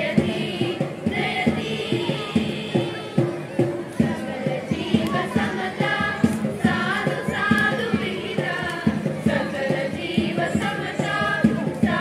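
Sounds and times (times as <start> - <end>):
students singing in unison: 0.0 - 3.3, 4.0 - 12.0
steady beat: 0.0 - 12.0.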